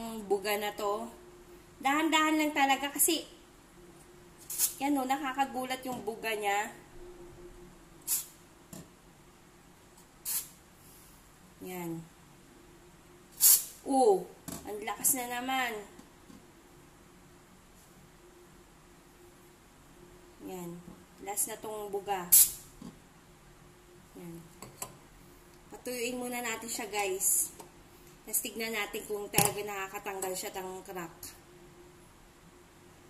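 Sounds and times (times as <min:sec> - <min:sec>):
aerosol spray hissing: 0:04.4 - 0:04.8, 0:08.0 - 0:08.4, 0:10.2 - 0:10.6, 0:13.4 - 0:13.7.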